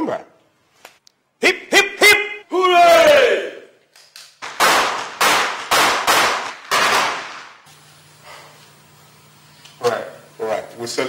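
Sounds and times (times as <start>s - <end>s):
handgun shots: 4.4s - 7.6s.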